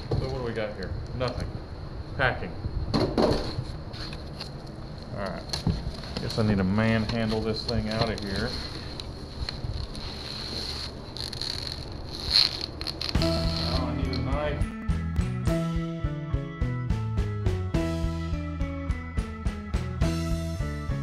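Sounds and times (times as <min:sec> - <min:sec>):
plastic wrap and cardboard rustling: 0:05.6 - 0:14.3
background music with drum beat: 0:13.2 - 0:21.0.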